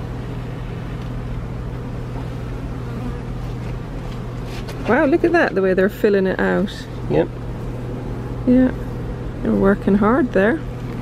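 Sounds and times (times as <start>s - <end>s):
honeybees buzzing: 0.0s - 11.0s.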